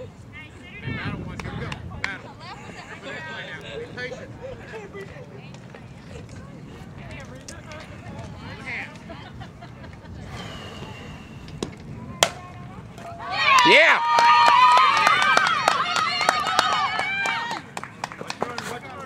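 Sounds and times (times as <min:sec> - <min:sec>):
bat hitting softball: 0:11.6 - 0:12.4
spectators yelling and cheering: 0:12.1 - 0:17.8.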